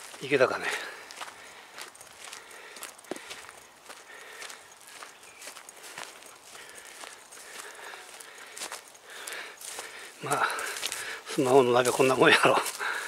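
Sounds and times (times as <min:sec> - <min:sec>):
footsteps on grassy dirt path: 0:00.0 - 0:13.0.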